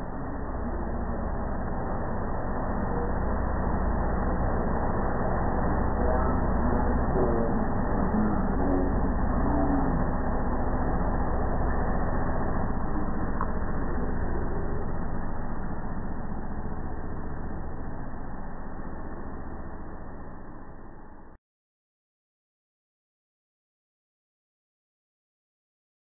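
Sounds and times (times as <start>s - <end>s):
gas dryer humming: 0.0s - 21.3s.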